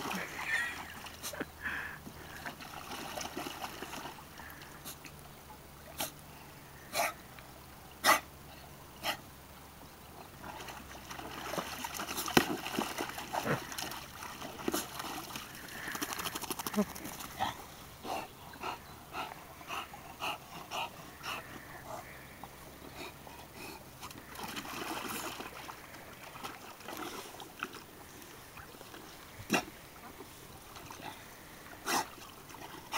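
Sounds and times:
water splashing and sloshing: 0.0 - 7.2, 10.2 - 32.9.

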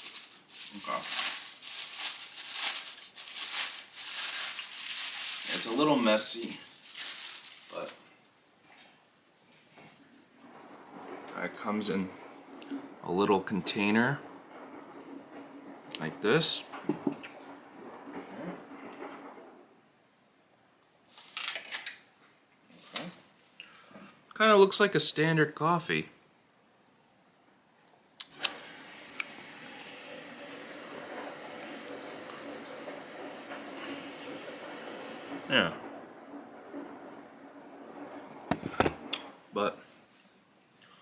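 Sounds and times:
sharp handling knocks: 38.4 - 39.1.

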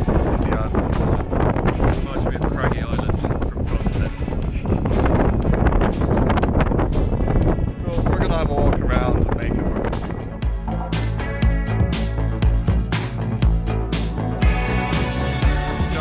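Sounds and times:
men talking: 0.0 - 1.2, 1.8 - 6.3, 7.7 - 10.2, 15.7 - 16.0
wind buffeting microphone: 0.0 - 13.6
background music with steady beat: 0.0 - 16.0.

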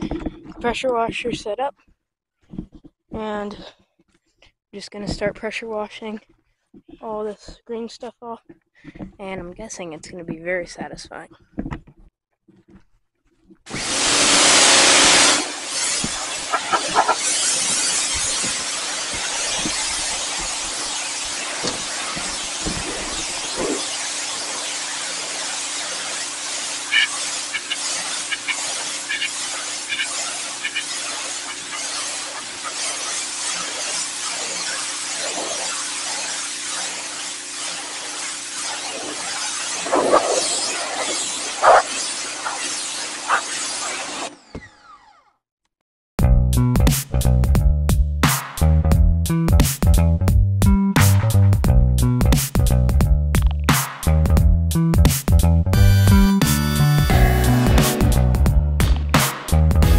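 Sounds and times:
pressure washer jet spraying: 13.7 - 44.3.

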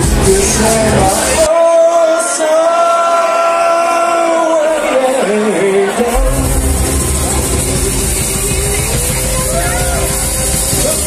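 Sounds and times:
bass and drums: 0.0 - 1.5, 6.1 - 11.0
live rock band: 5.8 - 11.0.

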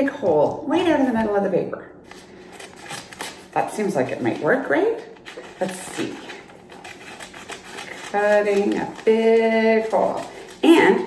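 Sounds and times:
paper rustling: 2.0 - 11.0
scissors snipping paper: 2.6 - 3.5, 5.3 - 11.0.

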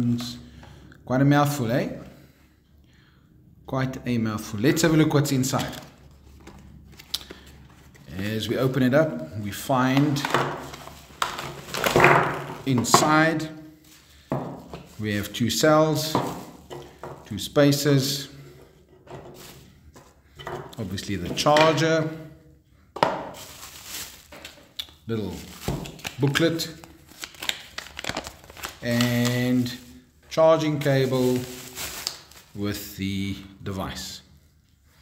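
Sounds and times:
bubble wrap crinkling: 10.1 - 12.7, 16.0 - 16.7, 19.3 - 19.8, 23.2 - 32.8.

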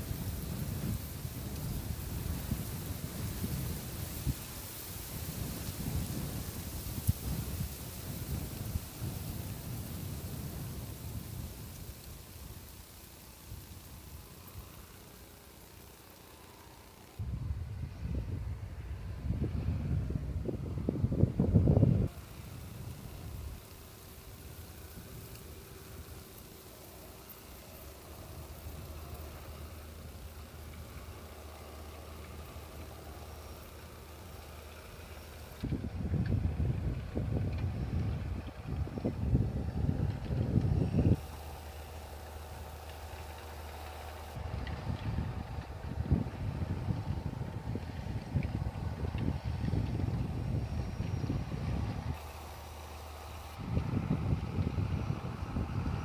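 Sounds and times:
wind buffeting microphone: 0.0 - 12.8, 17.2 - 26.3, 34.4 - 56.0
faint tractor engine: 0.0 - 56.0.

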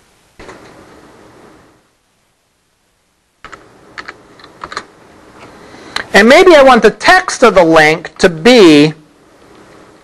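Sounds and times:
computer keyboard typing: 3.4 - 4.9.

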